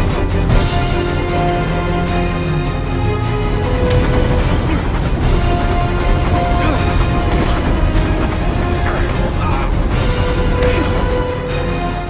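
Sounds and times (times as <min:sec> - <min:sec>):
film score music: 0:00.0 - 0:12.0
moving train rumble: 0:00.0 - 0:12.0.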